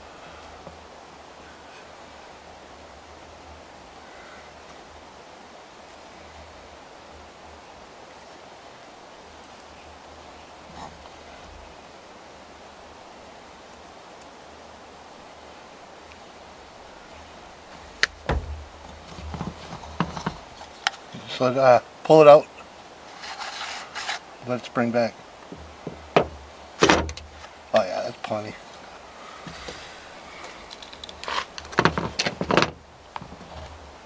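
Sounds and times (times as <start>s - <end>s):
faint steady hiss: 0.0s - 34.0s
plastic parts knocking and clacking: 25.8s - 28.4s, 30.7s - 33.4s.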